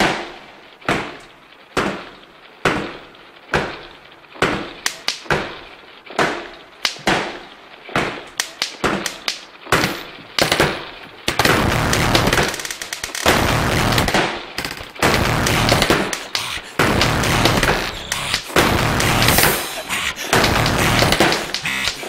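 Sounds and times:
drum beat: 0:14.7 - 0:22.0.

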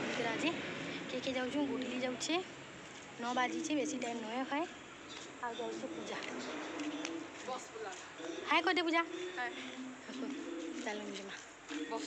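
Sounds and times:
women's voices: 0:00.0 - 0:02.5, 0:03.2 - 0:04.7, 0:05.4 - 0:12.0.

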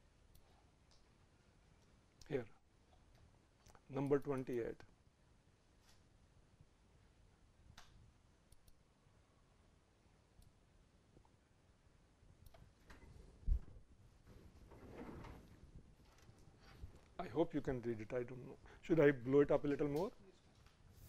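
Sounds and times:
computer mouse clicks: 0:03.1 - 0:04.7, 0:07.7 - 0:08.8, 0:12.4 - 0:13.0.

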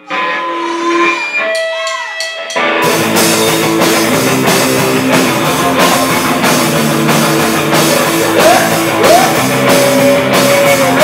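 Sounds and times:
electric guitar ringing notes: 0:00.0 - 0:11.0.

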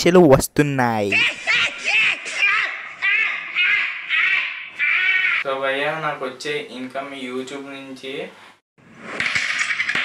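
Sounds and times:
high-pitched cartoon laughter: 0:01.1 - 0:05.4.

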